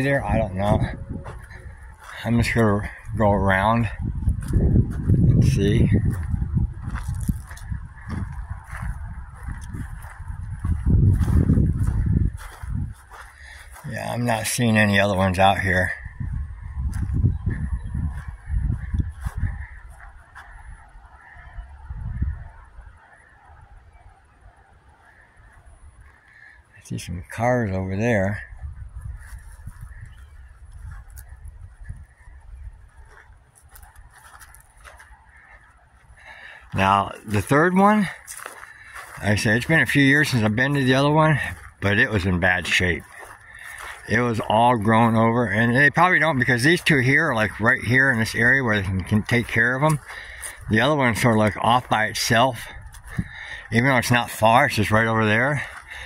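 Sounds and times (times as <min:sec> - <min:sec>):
footsteps through dry grass: 0:00.0 - 0:56.0
wind buffeting microphone: 0:00.0 - 0:56.0.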